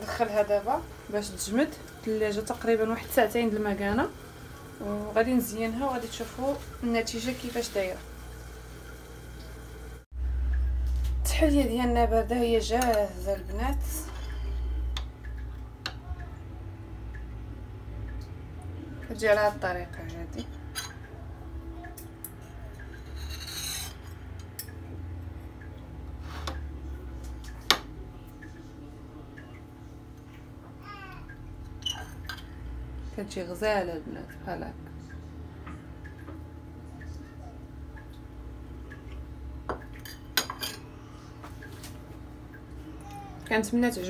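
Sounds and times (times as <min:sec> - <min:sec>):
low steady hum: 0:00.0 - 0:44.0
cutlery clinking on a plate: 0:22.2 - 0:24.8
knife scraping a ceramic plate: 0:22.8 - 0:24.2.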